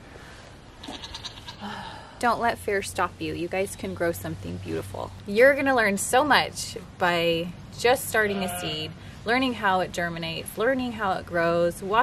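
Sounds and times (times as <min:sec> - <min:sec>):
goat or sheep bleating: 0:00.8 - 0:01.7, 0:08.2 - 0:08.9.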